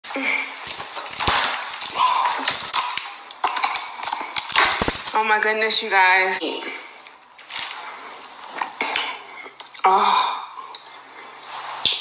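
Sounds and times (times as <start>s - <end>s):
lobster shell cracking and crunching: 0.6s - 5.2s.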